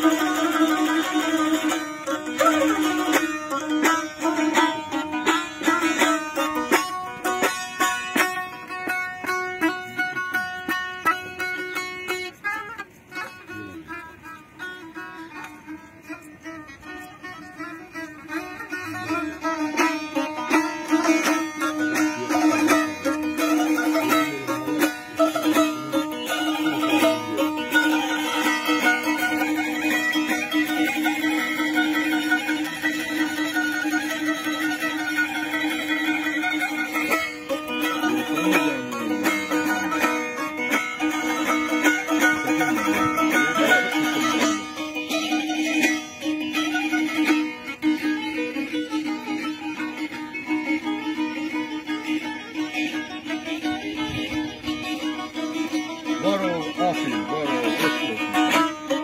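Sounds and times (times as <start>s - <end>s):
plucked string instrument: 0.0s - 59.0s.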